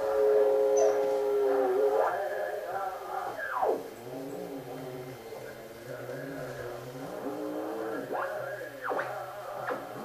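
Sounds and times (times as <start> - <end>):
chanting over radio: 0.0 - 10.0.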